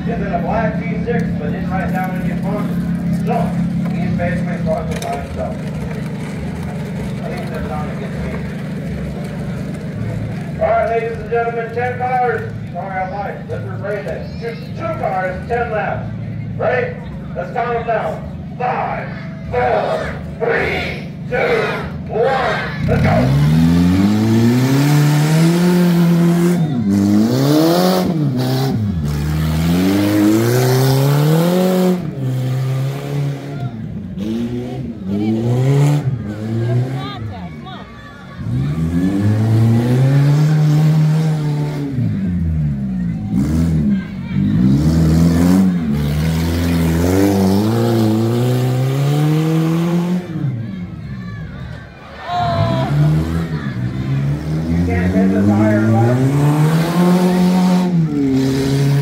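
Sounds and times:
car engines racing: 0:00.0 - 0:59.0.

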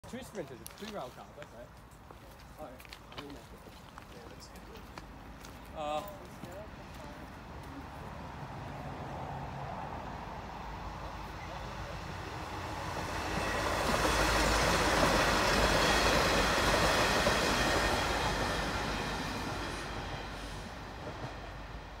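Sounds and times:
diesel railcars passing: 0:00.0 - 0:22.0.

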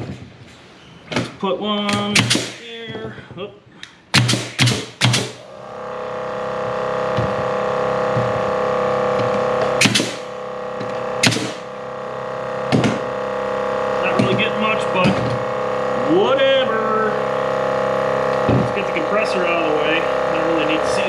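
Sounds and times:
air compressor humming: 0:00.0 - 0:21.0
nail gun shots: 0:01.8 - 0:02.7, 0:04.1 - 0:05.4, 0:09.8 - 0:10.3, 0:11.2 - 0:11.6.

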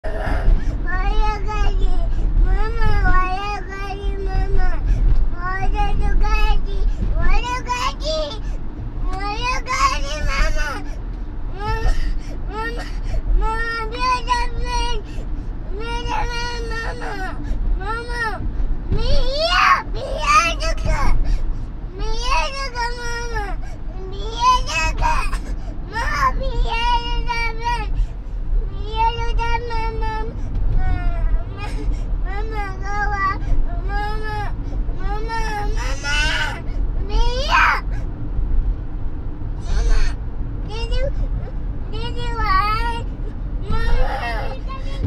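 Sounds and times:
moving car low rumble: 0:00.0 - 0:45.0
toddler crying: 0:43.7 - 0:45.0.

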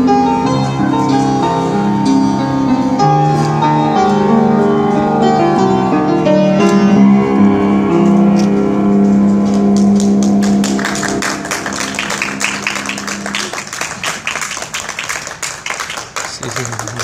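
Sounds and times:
piano chord ringing: 0:00.0 - 0:14.3
people clapping: 0:09.4 - 0:17.0.

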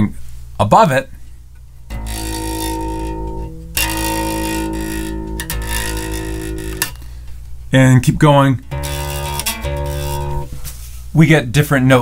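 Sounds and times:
bass guitar strings plucked: 0:01.9 - 0:07.2, 0:08.1 - 0:10.6.

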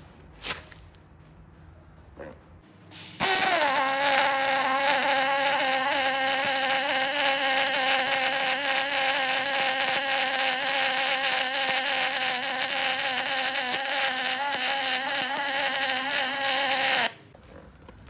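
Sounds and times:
welding arc buzzing hiss: 0:02.9 - 0:17.3.

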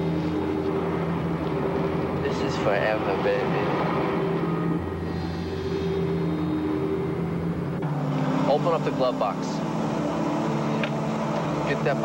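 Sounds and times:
car engine drone: 0:00.0 - 0:12.0
road noise: 0:00.0 - 0:12.0.

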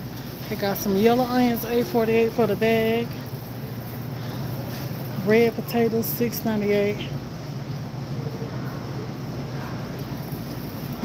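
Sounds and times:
low rumble and hiss: 0:00.0 - 0:11.0.

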